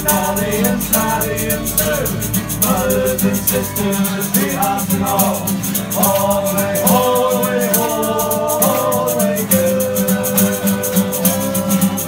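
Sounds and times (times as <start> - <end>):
group singing a sea shanty: 0.0 - 12.0
strummed acoustic guitar: 0.0 - 12.0
tambourine shaking: 0.0 - 12.0.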